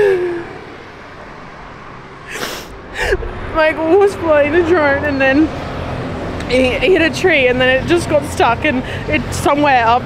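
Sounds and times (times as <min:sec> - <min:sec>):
woman laughing tearfully: 0:02.3 - 0:03.3.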